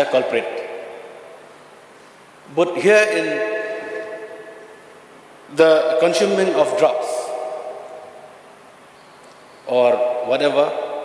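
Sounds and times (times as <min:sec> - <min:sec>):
low steady room tone: 0:00.0 - 0:11.0
man speaking in large hall: 0:00.0 - 0:11.0.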